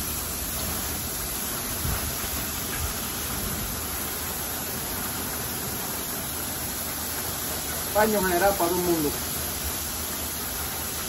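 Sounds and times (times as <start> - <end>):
hose nozzle spraying mist: 0.0 - 11.0.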